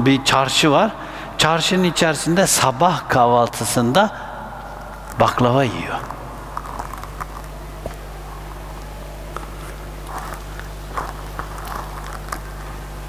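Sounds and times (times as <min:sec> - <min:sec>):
electrical hum: 0:00.0 - 0:13.0
audience rustles and clicks: 0:04.6 - 0:13.0.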